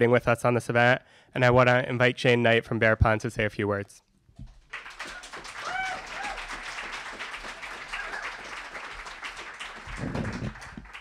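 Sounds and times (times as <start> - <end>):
audience applauding: 4.6 - 11.0
person cheering: 5.0 - 6.8, 7.6 - 8.7.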